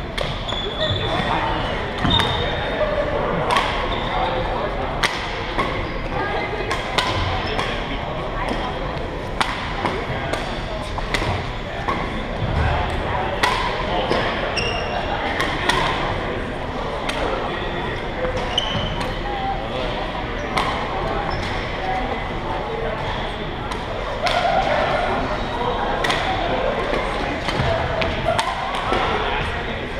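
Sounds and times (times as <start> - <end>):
spectators chatting: 0.0 - 29.9
shoe squeaks on court floor: 0.5 - 2.6, 14.1 - 15.0, 18.4 - 19.2
rackets striking shuttlecock: 6.7 - 7.9, 9.4 - 12.1, 13.4 - 14.4.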